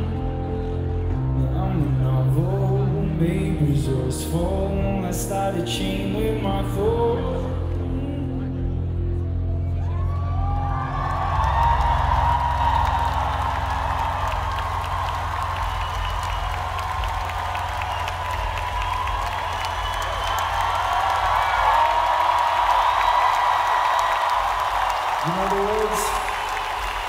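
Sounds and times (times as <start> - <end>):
crowd cheering and clapping: 9.4 - 27.0.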